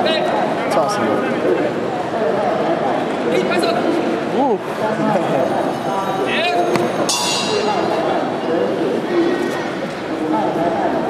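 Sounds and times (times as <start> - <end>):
murmuring voices in a hall: 0.0 - 11.0
bright metallic ring: 5.4 - 8.0.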